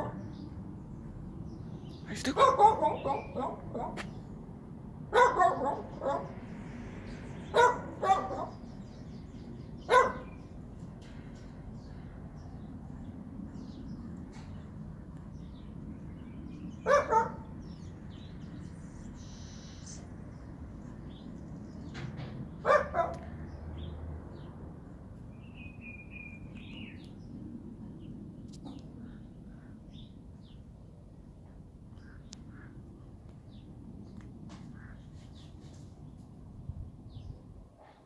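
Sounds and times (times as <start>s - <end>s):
small dog barking: 2.3s - 4.1s, 5.1s - 6.3s, 7.5s - 8.6s, 9.9s - 10.3s, 16.8s - 17.5s, 22.6s - 23.2s.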